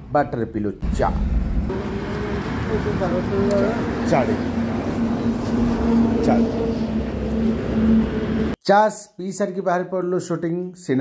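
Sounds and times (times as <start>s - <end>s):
outdoor rumble: 0.8s - 8.6s.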